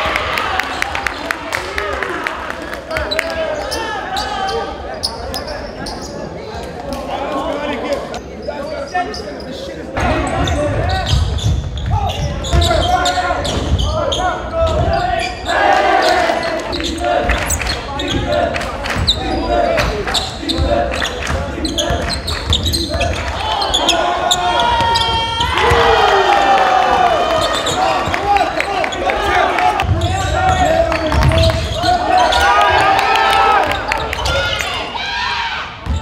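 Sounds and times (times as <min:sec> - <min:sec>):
voices: 0:00.0 - 0:35.2.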